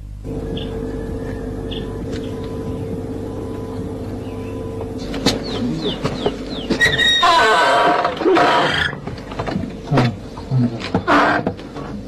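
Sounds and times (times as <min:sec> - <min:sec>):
steady hum: 0:00.0 - 0:12.0
bird chirps: 0:00.4 - 0:07.2.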